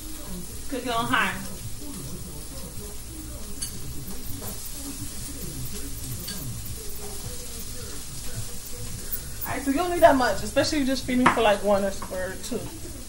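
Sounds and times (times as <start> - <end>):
frying pan sizzling: 0.0 - 13.0
utensil clicking against pan: 0.0 - 13.0.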